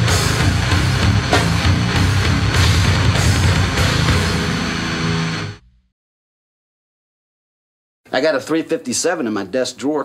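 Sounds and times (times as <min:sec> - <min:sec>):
death metal guitar chord ringing: 0:00.0 - 0:05.7.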